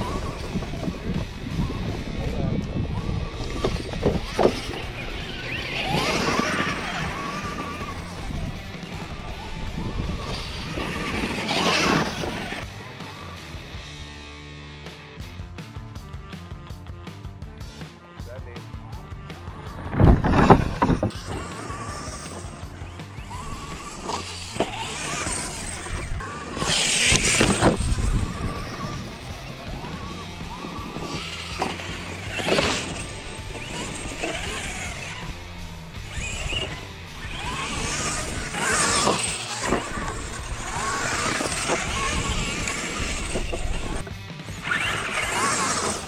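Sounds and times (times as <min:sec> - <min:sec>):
loud bumps: 0:00.0 - 0:12.6, 0:19.1 - 0:46.0
toy truck electric motor whining: 0:00.0 - 0:13.7, 0:19.3 - 0:46.0.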